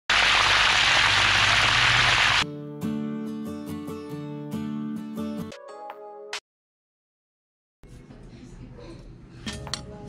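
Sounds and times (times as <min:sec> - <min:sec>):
hot oil sizzling: 0:00.1 - 0:02.4.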